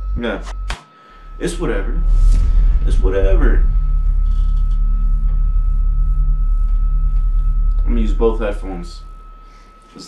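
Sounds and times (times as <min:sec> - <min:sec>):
thin high whine: 0:00.0 - 0:10.0
loud low rumble: 0:01.2 - 0:09.8.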